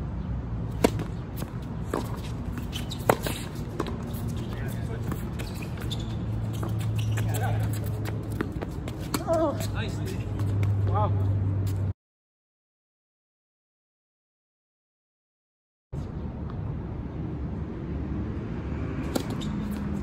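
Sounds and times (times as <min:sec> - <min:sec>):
tennis balls struck by rackets: 0:00.7 - 0:11.0.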